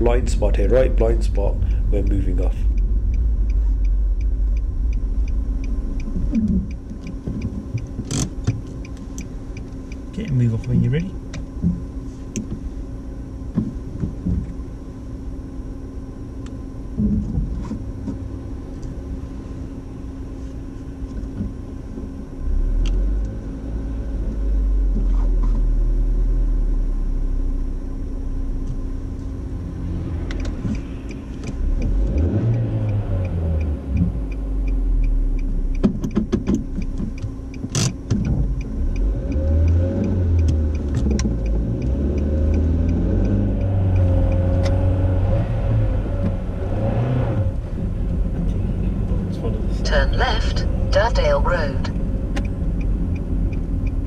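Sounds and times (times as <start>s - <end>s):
car engine from inside cabin: 0.0s - 54.0s
road noise: 0.0s - 54.0s.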